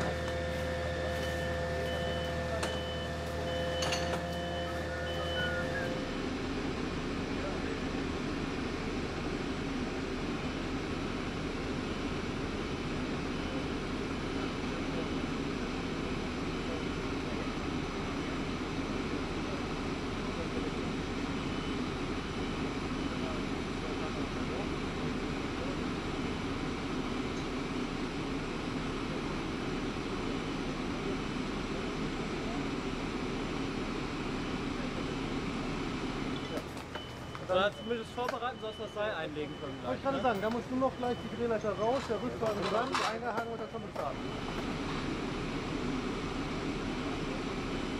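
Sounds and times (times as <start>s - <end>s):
truck engine running: 0.0s - 47.9s.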